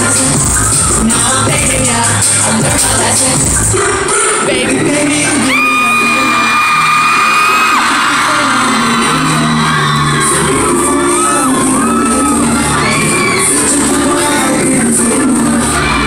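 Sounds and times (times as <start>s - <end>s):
pop song over sound system: 0.0s - 16.0s
fans whooping: 5.0s - 16.0s.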